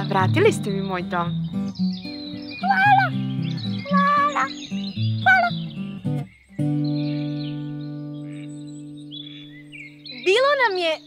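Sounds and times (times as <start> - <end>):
plucked guitar background music: 0.0 - 11.0.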